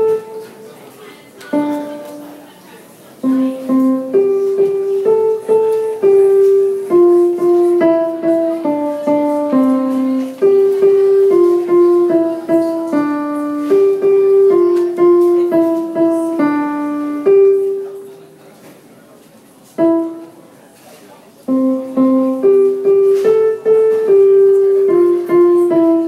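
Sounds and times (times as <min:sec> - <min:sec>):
digital piano melody: 0:00.0 - 0:00.7, 0:01.5 - 0:02.5, 0:03.2 - 0:18.2, 0:19.8 - 0:20.4, 0:21.5 - 0:26.0.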